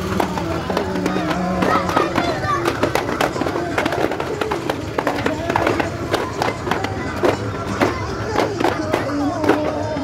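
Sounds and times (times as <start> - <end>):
music: 0.0 - 10.0
sharp percussive hits: 0.0 - 10.0
voices singing or chanting: 0.0 - 10.0.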